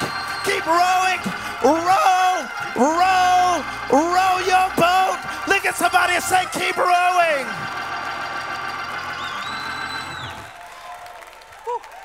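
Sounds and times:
congregation clapping: 0.0s - 12.0s
keyboard chords with bass note: 0.2s - 10.4s.

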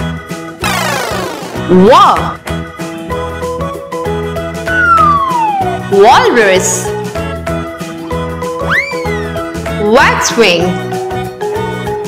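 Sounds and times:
upbeat children's music: 0.0s - 12.0s
whistle-like tone sliding down: 4.7s - 5.8s.

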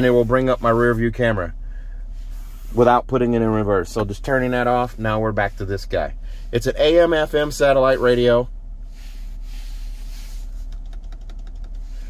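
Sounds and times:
vehicle cabin hum: 0.0s - 12.0s.

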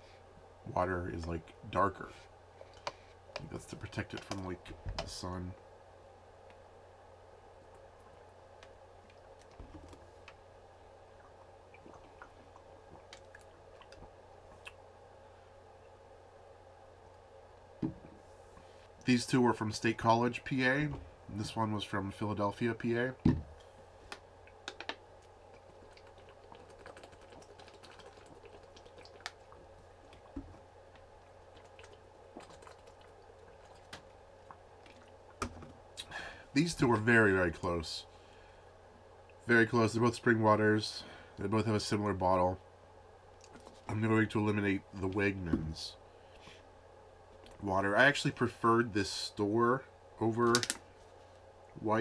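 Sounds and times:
low room hum: 0.0s - 52.0s
soft gulps: 11.0s - 14.9s, 25.3s - 36.4s.

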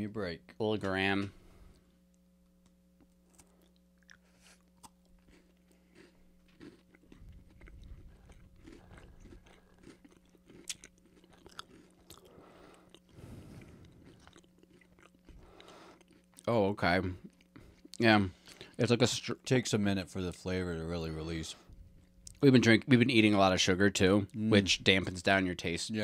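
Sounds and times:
chewing and crunching wafer: 3.2s - 18.8s.

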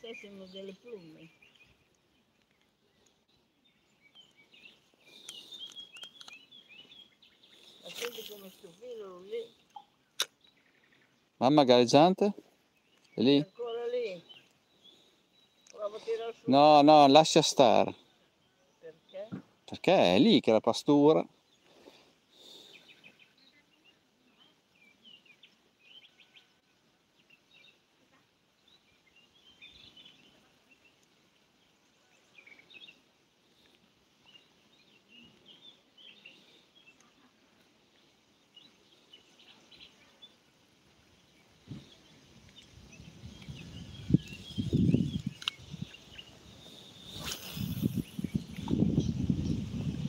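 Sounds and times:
small birds chirping: 0.0s - 50.0s.

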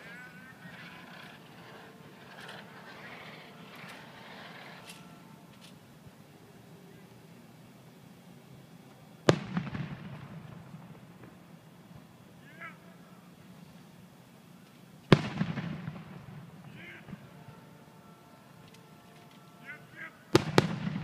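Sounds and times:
firework shells bursting: 0.0s - 6.0s, 14.7s - 17.9s, 20.3s - 21.0s
rolling echo: 0.0s - 6.1s, 9.2s - 13.4s, 15.0s - 21.0s.

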